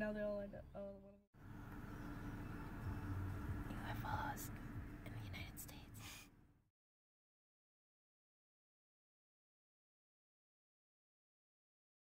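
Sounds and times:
low steady rumble: 0.0s - 6.6s
faint whispered voice: 3.7s - 6.3s.

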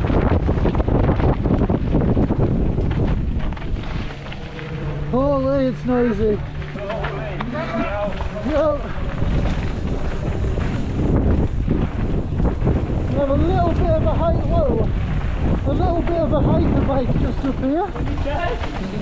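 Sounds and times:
tyres rumbling on dirt trail: 0.0s - 19.0s
wind buffeting microphone: 0.0s - 19.0s
voices: 5.0s - 10.3s, 13.1s - 14.9s, 15.6s - 19.0s.

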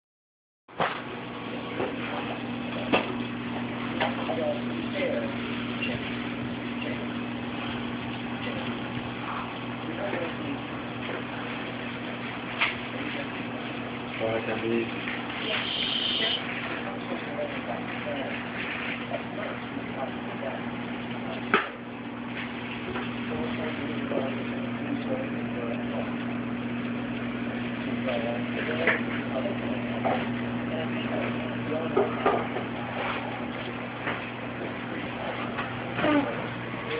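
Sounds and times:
aquarium pumps humming: 0.7s - 36.9s.

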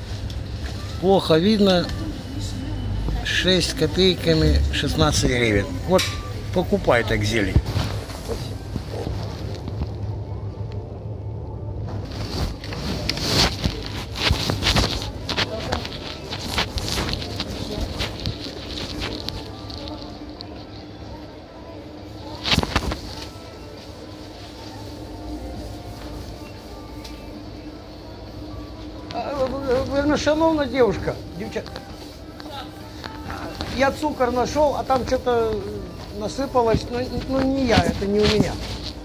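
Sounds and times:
faint voices: 0.0s - 39.0s
shop music: 0.0s - 39.0s
muffled rustling and knocks in pocket: 12.1s - 20.1s, 36.4s - 39.0s.

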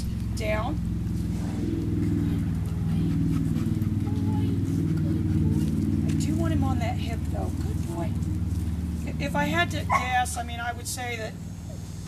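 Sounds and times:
motor running with low drone: 0.0s - 12.0s.

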